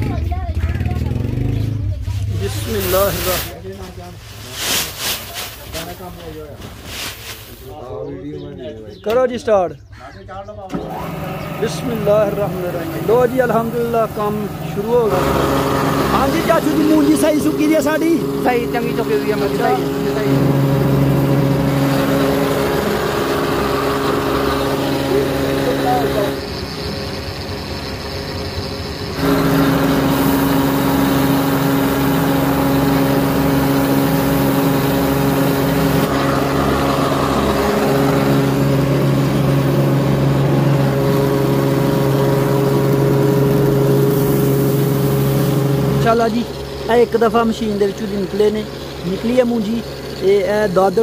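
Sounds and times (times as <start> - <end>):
rice huller motor humming: 2.3 - 8.3, 10.7 - 51.0.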